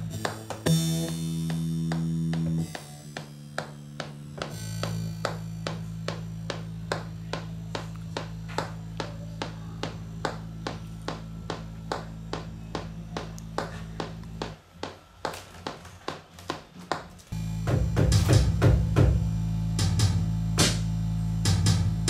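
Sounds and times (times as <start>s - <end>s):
electronic percussion pattern: 0.0s - 14.6s, 17.4s - 22.0s
low bass drone: 0.0s - 14.7s, 17.4s - 22.0s.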